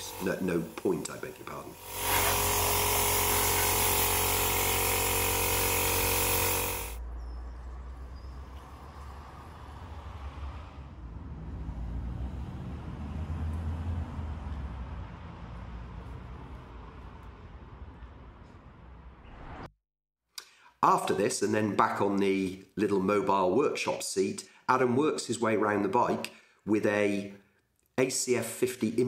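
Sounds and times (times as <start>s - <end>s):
spray gun hissing: 0.0s - 7.0s.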